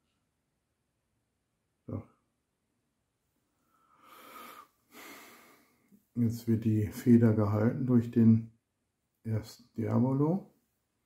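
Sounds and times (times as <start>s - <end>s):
person breathing softly: 3.5s - 6.0s.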